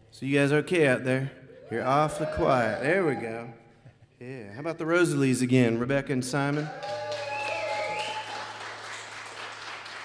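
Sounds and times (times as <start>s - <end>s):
audience applauding: 6.4s - 10.0s.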